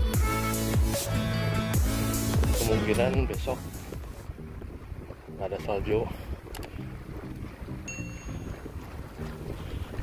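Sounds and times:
wind buffeting microphone: 1.9 - 10.0
faint background music: 2.4 - 9.6.

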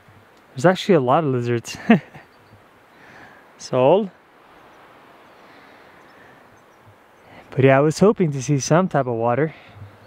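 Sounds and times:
faint outdoor background noise: 0.0 - 10.0
man's voice: 7.5 - 9.6.

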